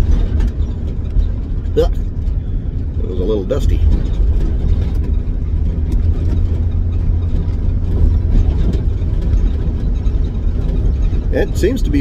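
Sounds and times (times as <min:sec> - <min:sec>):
road noise: 0:00.0 - 0:12.0
van engine drone: 0:00.0 - 0:12.0.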